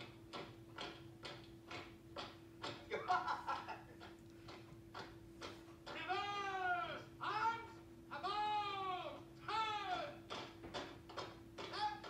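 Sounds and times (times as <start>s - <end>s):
steady hum: 0.0s - 12.0s
man shouting drawn-out calls: 5.9s - 10.3s, 11.6s - 12.0s.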